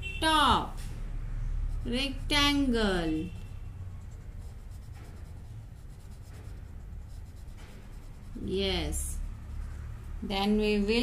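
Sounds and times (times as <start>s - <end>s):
colouring scratching on paper: 1.5s - 11.0s.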